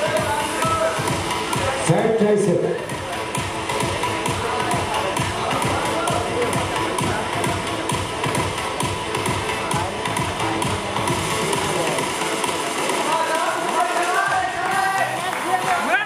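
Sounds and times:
loud music with steady beat: 0.0s - 16.0s.

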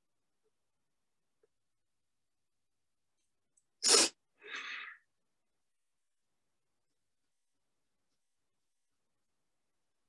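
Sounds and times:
person sneezing: 3.8s - 4.7s
sniff or exhale: 3.8s - 5.0s.

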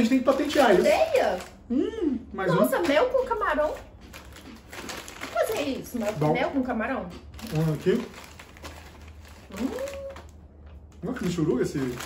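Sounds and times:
snacks rustling and crunching: 0.0s - 1.6s, 2.7s - 6.5s, 7.1s - 12.0s.

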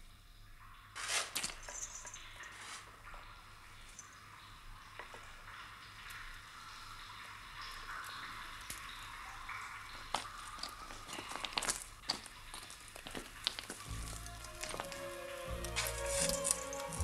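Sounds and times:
water dripping: 0.0s - 17.0s
steady hiss: 0.9s - 17.0s.

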